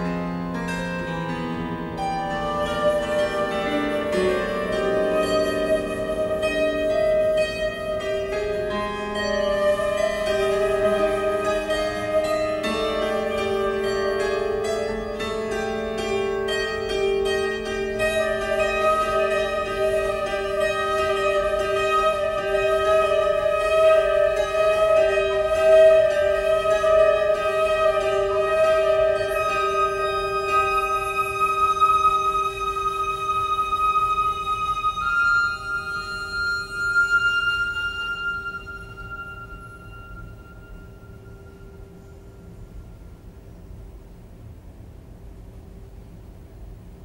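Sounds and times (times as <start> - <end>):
flute sustained notes: 0.0 - 43.8.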